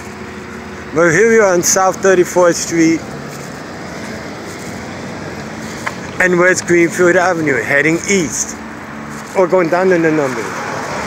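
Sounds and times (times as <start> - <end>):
street background noise: 0.0 - 11.0.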